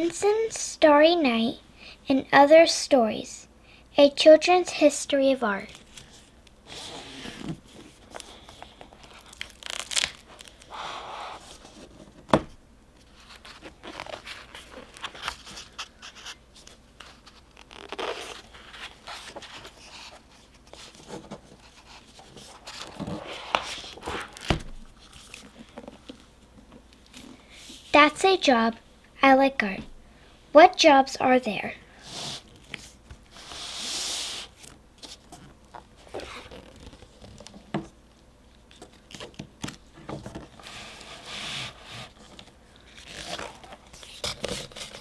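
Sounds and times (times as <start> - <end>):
book pages rustling: 5.6 - 12.4, 13.0 - 27.8, 32.4 - 37.7, 38.6 - 45.0
book cover opening: 22.6 - 26.2.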